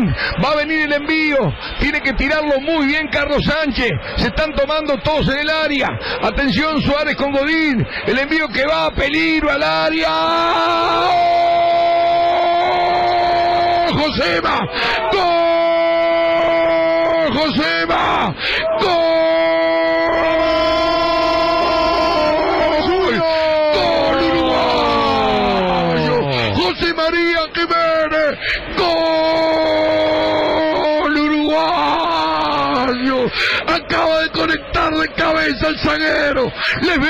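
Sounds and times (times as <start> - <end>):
man shouting sustained goal cry: 8.6 - 26.8, 28.7 - 37.0.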